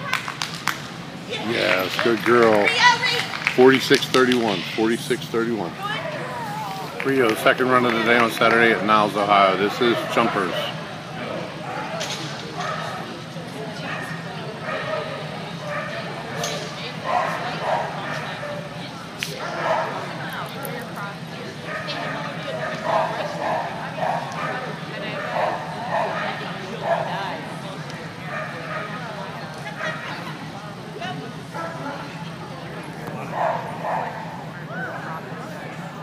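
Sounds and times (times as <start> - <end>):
dog barking: 17.0 - 18.6, 19.6 - 20.0, 21.7 - 27.1, 33.3 - 34.3.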